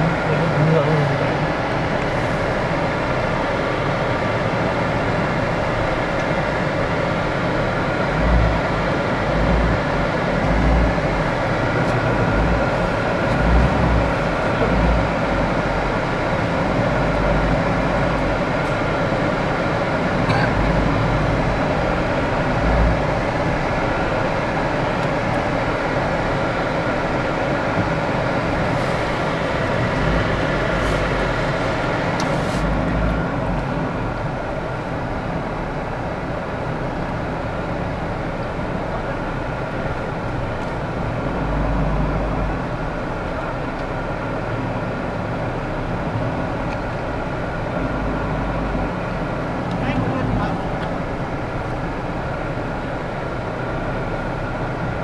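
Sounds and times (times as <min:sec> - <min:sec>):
road noise on rough road: 0:00.0 - 0:55.0
vehicle engine running: 0:00.0 - 0:55.0.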